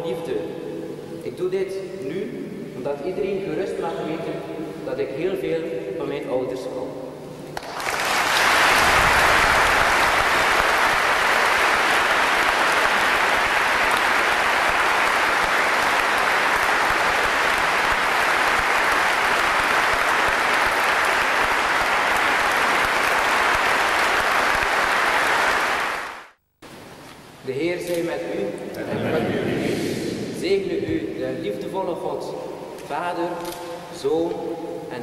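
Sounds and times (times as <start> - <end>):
congregation applauding: 7.5 - 26.4.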